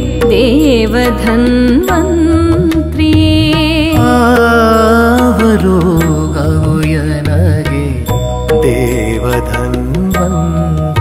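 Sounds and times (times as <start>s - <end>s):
keyboard: 0.0s - 11.0s
person singing devotional song: 0.0s - 11.0s
tabla: 0.0s - 11.0s.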